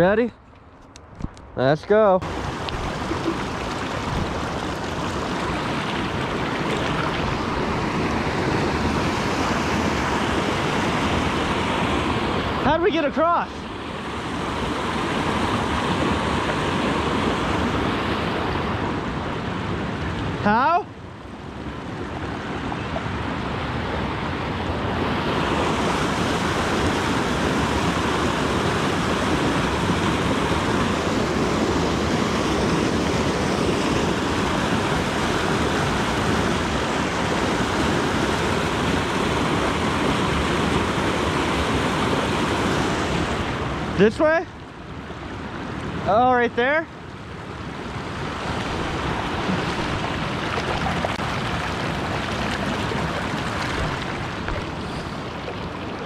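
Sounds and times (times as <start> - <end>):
creek water over rocky cascade: 1.6 - 56.0.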